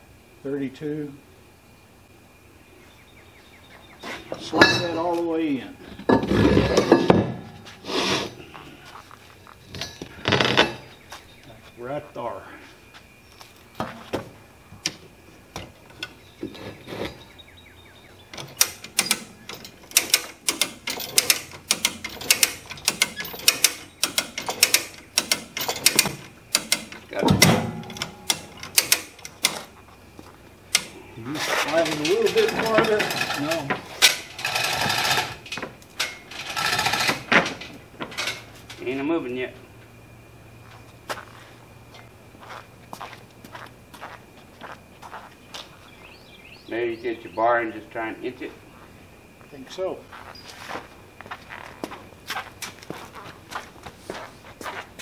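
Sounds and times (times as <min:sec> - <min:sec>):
ratchet clicking: 0:18.6 - 0:27.0.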